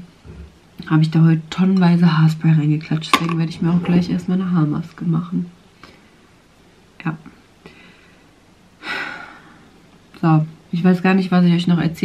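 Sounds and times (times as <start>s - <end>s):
woman speaking: 0.8s - 5.6s, 7.0s - 7.4s, 10.2s - 12.0s.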